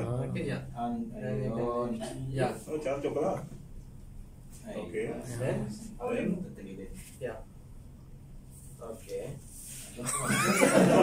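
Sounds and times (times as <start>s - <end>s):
group of people laughing: 10.0s - 11.0s.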